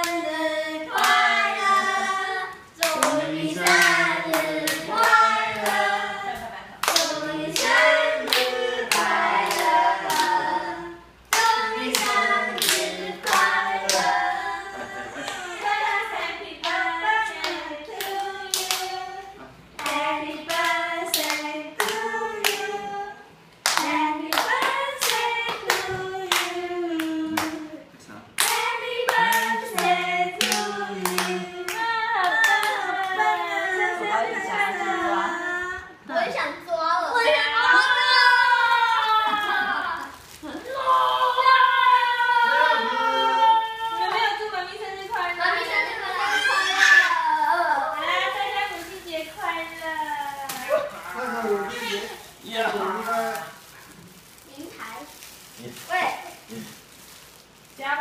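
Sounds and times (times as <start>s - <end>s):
group singing a birthday song: 0.0s - 54.4s.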